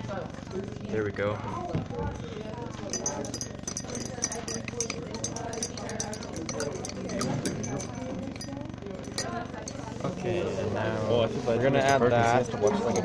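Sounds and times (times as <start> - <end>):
indistinct background voices: 1.7 - 13.0
light clicks and clinks: 2.8 - 9.9.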